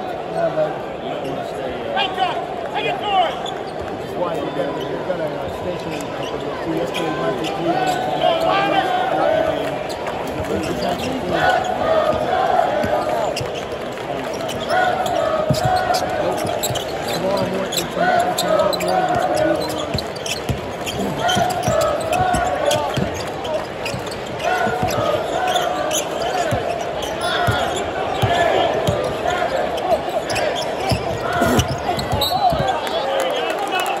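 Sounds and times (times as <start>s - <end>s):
basketball bouncing on court: 14.5s - 17.6s, 18.8s - 25.6s, 26.4s - 29.3s, 30.2s - 32.8s.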